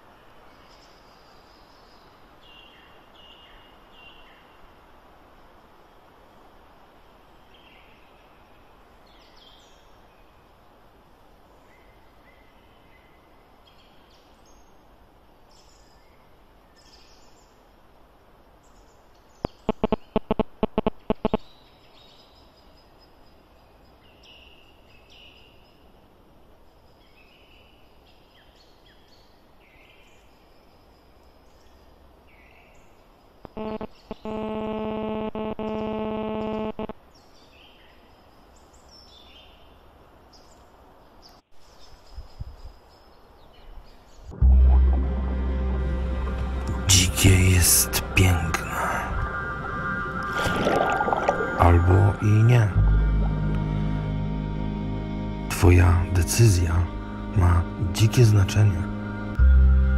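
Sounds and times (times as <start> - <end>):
small birds chirping: 18.6 - 25.9
loud steady tone: 33.6 - 36.9, 44.4 - 59.9.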